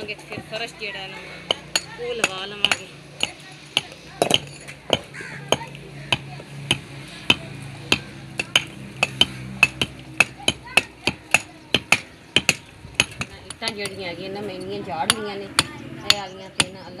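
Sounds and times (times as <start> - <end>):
hammers chipping mortar off bricks: 1.4 - 14.0, 15.0 - 17.0.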